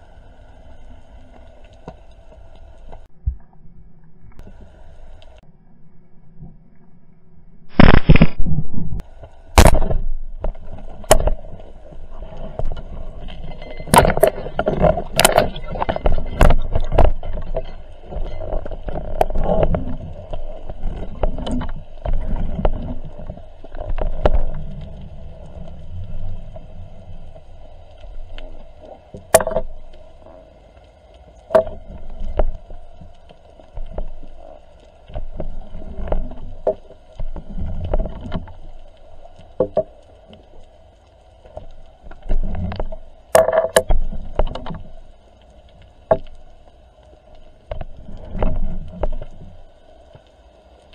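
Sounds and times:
underwater water rushing: 7.7s - 50.9s
sharp clicks and knocks: 42.1s - 44.9s.

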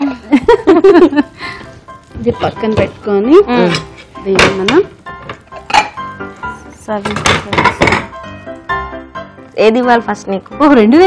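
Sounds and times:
background music: 0.0s - 11.0s
spatula stirring in a pan: 1.6s - 8.4s.

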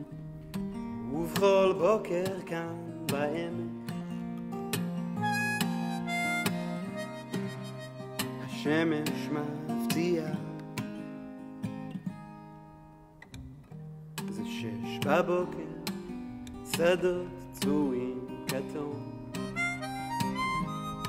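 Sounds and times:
acoustic guitar picked: 0.0s - 21.0s
harmonica melody: 5.2s - 8.6s, 19.3s - 21.0s.

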